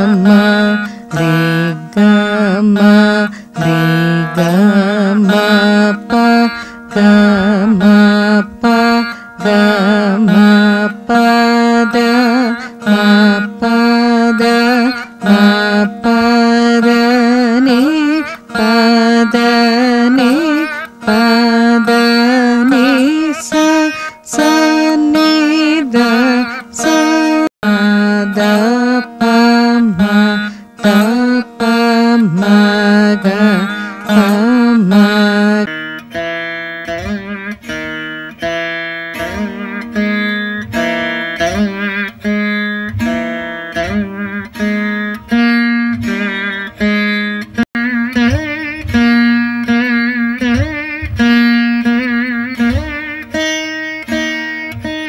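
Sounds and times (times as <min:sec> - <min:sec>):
plucked veena melody: 0:00.0 - 0:55.0.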